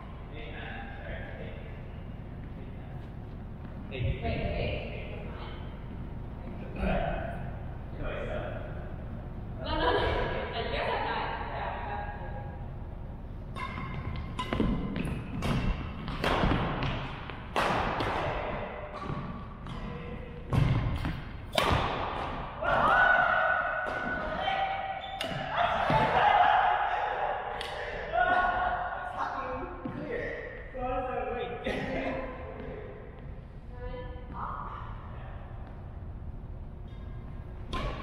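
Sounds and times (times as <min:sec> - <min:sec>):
racket hitting shuttlecock: 0:13.5 - 0:22.9, 0:23.8 - 0:24.4, 0:25.1 - 0:26.2, 0:37.7 - 0:38.0.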